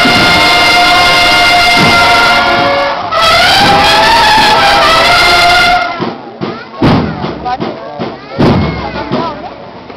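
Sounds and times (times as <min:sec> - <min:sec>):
brass band playing: 0:00.0 - 0:06.2.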